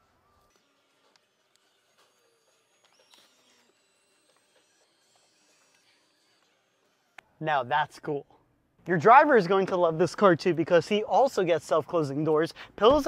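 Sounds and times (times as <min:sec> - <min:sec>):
faint electric motor whine: 0:00.0 - 0:10.4.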